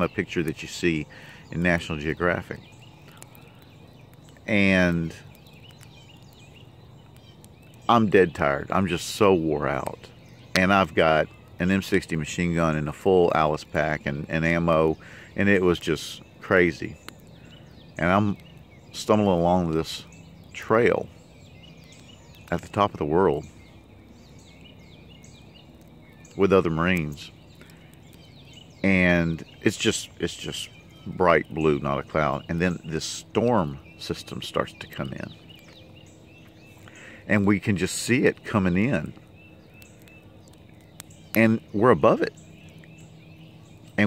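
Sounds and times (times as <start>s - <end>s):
man speaking: 0.0s - 2.6s, 4.4s - 5.3s, 7.9s - 17.0s, 28.8s - 35.3s, 37.3s - 39.1s, 41.4s - 42.4s
soft bird chirps: 0.0s - 44.0s.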